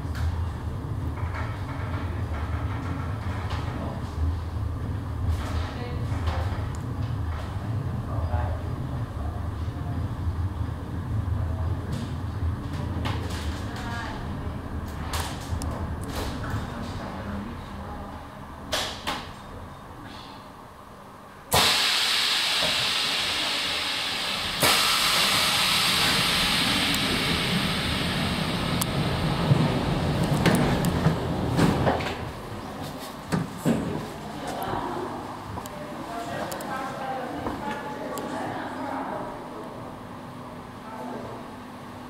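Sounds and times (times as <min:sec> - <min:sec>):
funicular car rumbling: 0:00.0 - 0:20.0, 0:21.5 - 0:36.0
loud hiss: 0:21.5 - 0:29.4.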